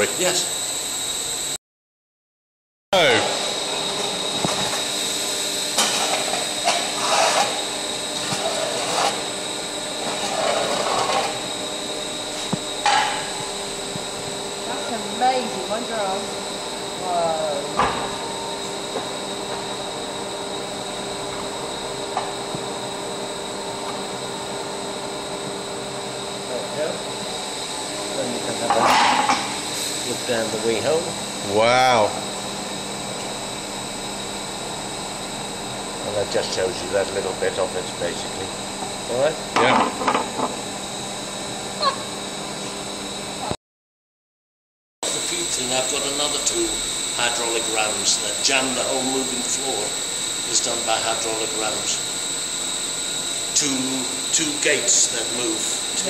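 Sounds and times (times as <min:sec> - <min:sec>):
boiler plant humming: 0:03.0 - 0:43.5, 0:45.0 - 0:56.0
high whine: 0:03.0 - 0:43.6, 0:45.0 - 0:56.0.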